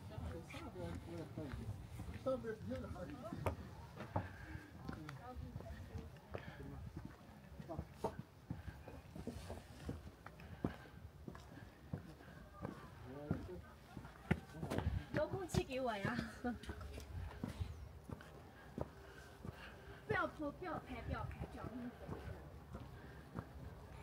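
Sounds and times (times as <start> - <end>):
footsteps: 0.1 - 24.0.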